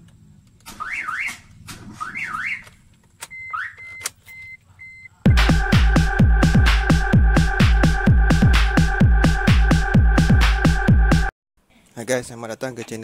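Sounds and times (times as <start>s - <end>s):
car alarm siren sweeps: 0.7s - 11.3s
electronic dance music: 5.3s - 11.3s.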